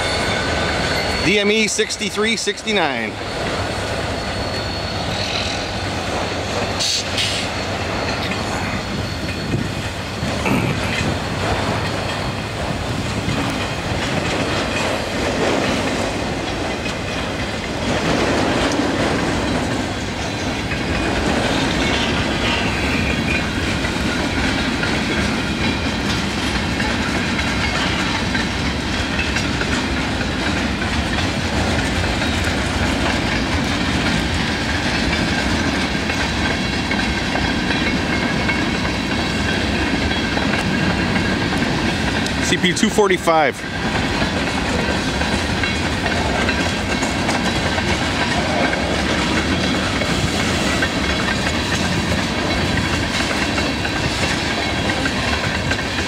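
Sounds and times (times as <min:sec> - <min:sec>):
steel wheels rumbling on rail: 0:00.0 - 0:56.0.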